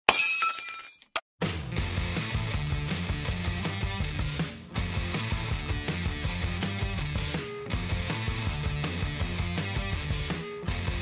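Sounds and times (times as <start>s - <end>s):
glass shattering: 0.1s - 1.2s
music with steady beat: 1.4s - 11.0s.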